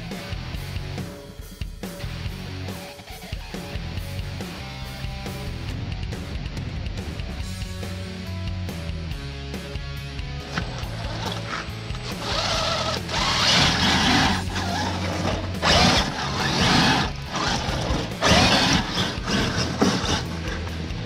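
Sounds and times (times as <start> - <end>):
toy car motor whirring: 10.5 - 20.7
tyres churning slush: 10.6 - 20.9.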